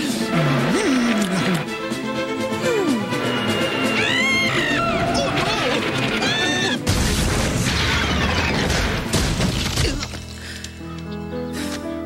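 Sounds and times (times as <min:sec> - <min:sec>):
soundtrack music: 0:00.0 - 0:09.7.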